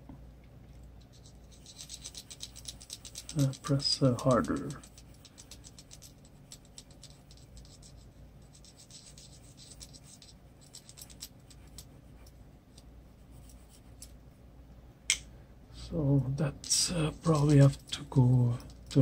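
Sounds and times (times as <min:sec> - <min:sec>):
colored pencil scratching on paper: 0:01.0 - 0:12.4.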